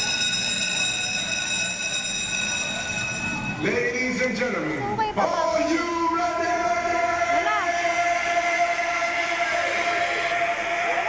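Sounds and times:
steady high-pitched tone: 0.0s - 11.0s.

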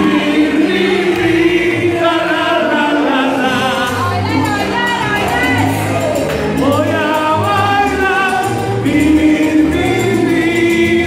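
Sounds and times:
steady bass line: 0.0s - 11.0s
voices singing together: 0.0s - 11.0s.

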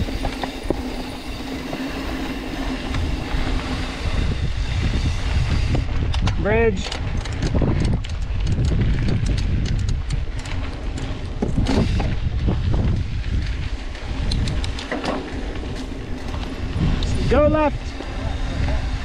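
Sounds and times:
bike rattling: 0.0s - 19.0s
tyres on dirt: 0.0s - 19.0s
wind rumbling on microphone: 0.0s - 19.0s.

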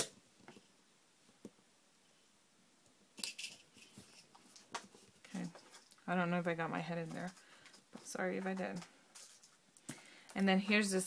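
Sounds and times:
paper rustle: 3.3s - 9.6s.

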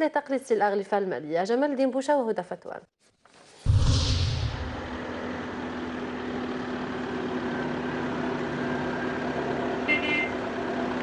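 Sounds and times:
constant low hum: 3.7s - 7.0s.

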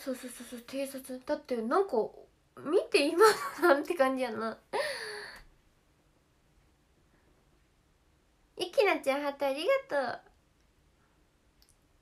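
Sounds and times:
woman speaking: 0.0s - 4.7s, 8.6s - 10.3s
faint click: 11.6s - 11.9s.

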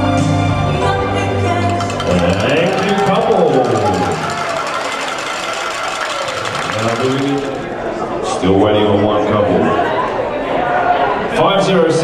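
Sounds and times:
crowd noise in hall: 0.0s - 12.0s.

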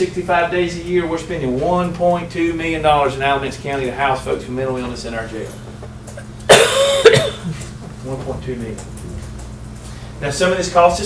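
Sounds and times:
loud coughs: 6.2s - 7.7s.

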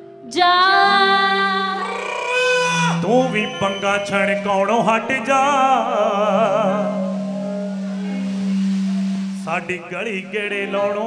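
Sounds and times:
person singing: 0.2s - 8.2s, 9.4s - 11.0s.

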